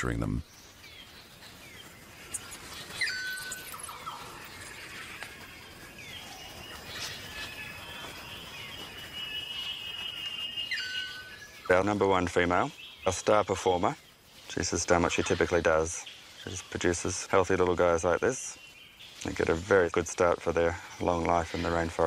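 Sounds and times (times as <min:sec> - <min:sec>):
bird whistles and chirps: 0:02.3 - 0:11.7.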